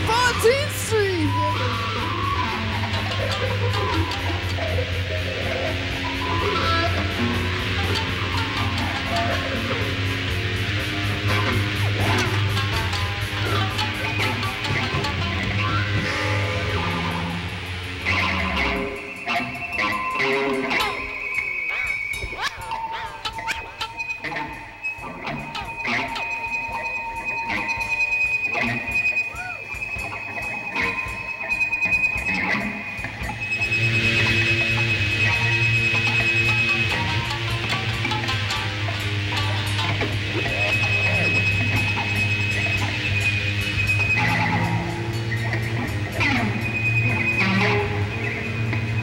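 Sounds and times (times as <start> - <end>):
high held guitar tones and scrapes: 11.3 - 49.0.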